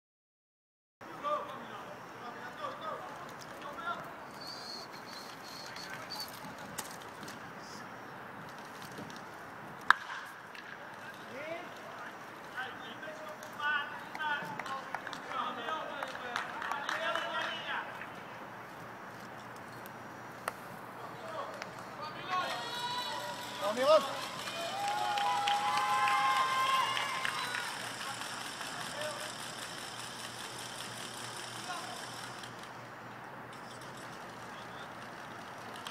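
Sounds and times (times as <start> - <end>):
baseball striking crack: 9.8 - 11.0, 20.4 - 20.8
people calling in stands: 21.0 - 32.4.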